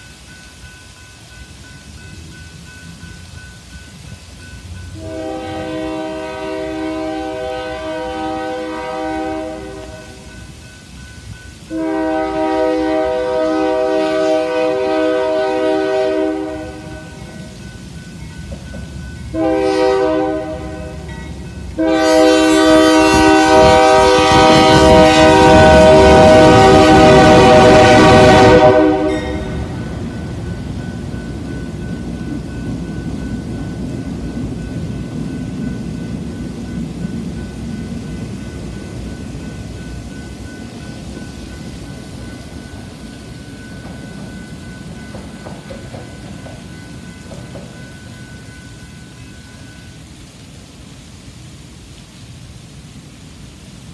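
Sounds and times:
train cars rumbling past: 0.0 - 50.0
locomotive engine and wheels rumbling: 0.0 - 53.9
locomotive air horn blasts: 4.9 - 10.3, 11.7 - 17.5, 19.3 - 21.1, 21.8 - 29.8.

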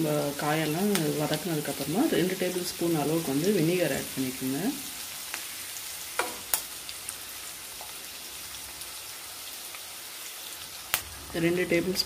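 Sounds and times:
vegetables sizzling in hot oil: 0.0 - 12.0.

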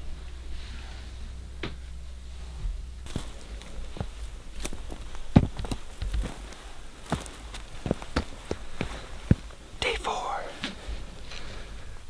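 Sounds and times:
footsteps: 2.6 - 12.0
person whispering: 9.8 - 10.8.

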